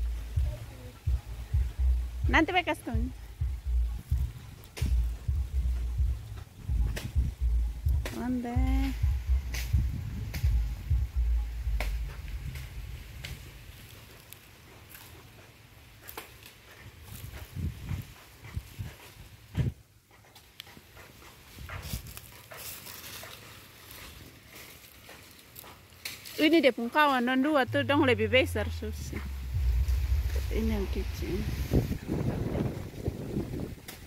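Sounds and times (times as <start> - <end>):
low rumble on microphone: 0.0 - 14.0, 27.7 - 34.0.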